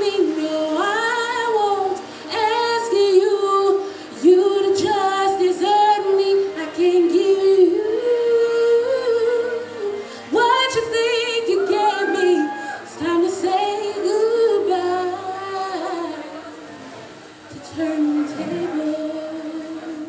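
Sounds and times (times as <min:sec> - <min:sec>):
woman singing with vibrato: 0:00.0 - 0:16.7, 0:17.5 - 0:20.0.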